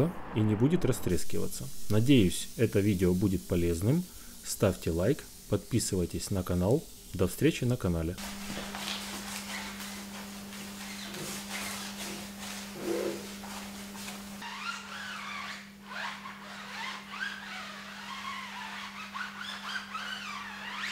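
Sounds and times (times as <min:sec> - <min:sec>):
brush scrubbing tire: 0:08.2 - 0:14.3
pad wiping tire with squeaks: 0:08.4 - 0:20.9.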